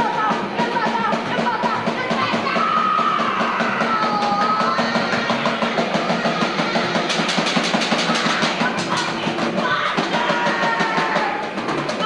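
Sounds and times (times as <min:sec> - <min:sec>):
fast drumming: 0:00.0 - 0:12.0
punk band playing live: 0:00.0 - 0:12.0.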